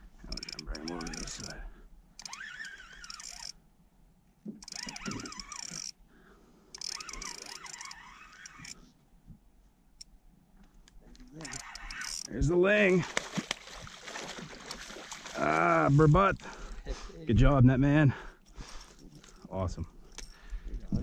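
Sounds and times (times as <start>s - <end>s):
spinning reel cranking: 0.3s - 1.6s, 2.2s - 3.6s, 4.6s - 6.0s, 6.7s - 8.8s, 11.3s - 12.3s.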